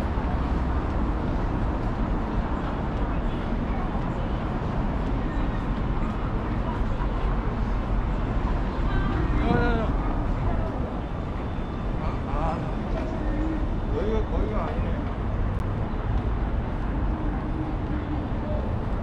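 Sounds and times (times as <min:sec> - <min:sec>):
passers-by talking: 0:00.0 - 0:19.0
road traffic rumble: 0:00.0 - 0:19.0.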